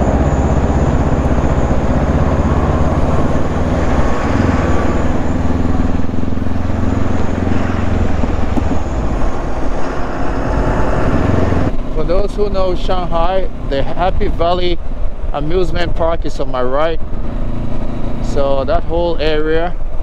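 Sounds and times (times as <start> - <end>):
motorcycle engine accelerating: 0.0 - 20.0.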